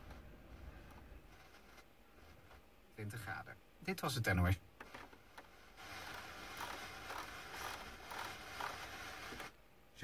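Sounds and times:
steady hiss: 0.0 - 10.0
rotary knob turning: 4.8 - 9.5.

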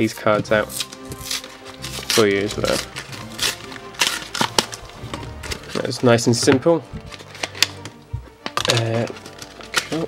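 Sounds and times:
background music: 0.0 - 10.0
plastic packaging crinkling: 0.6 - 10.0.

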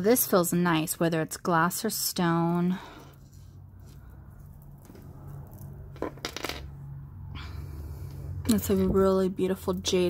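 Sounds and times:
cord rustling: 2.5 - 6.6
beads and metal links clicking: 3.1 - 6.3.

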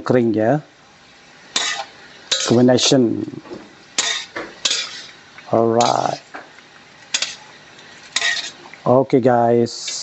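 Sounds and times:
boiling water: 0.5 - 10.0.

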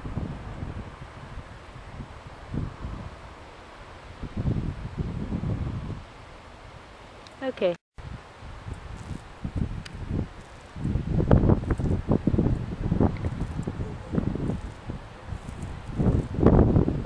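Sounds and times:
wind buffeting microphone: 0.0 - 6.9, 8.0 - 17.0.

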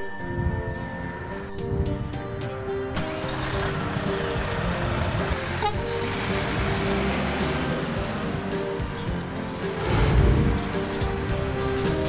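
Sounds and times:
background music of held notes: 0.0 - 12.0
highway traffic: 1.9 - 12.0.

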